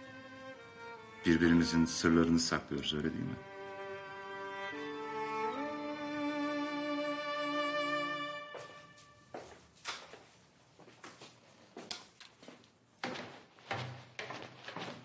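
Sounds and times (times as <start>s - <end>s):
bowed string music: 0.0s - 9.2s
footsteps on floor and stairs: 8.4s - 15.0s.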